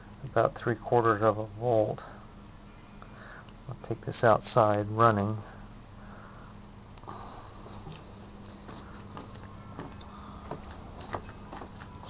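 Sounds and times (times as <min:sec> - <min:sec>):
low steady motor hum: 0:00.0 - 0:12.0
handling and walking noises: 0:07.6 - 0:12.0.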